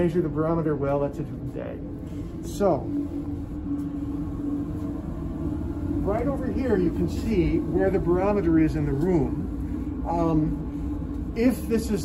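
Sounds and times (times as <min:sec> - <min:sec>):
low room rumble: 0:00.0 - 0:12.0
steady hum: 0:00.0 - 0:12.0.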